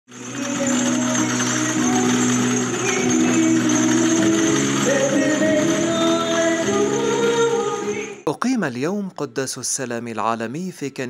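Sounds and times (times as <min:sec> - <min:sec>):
voices singing a hymn: 0:00.4 - 0:08.2.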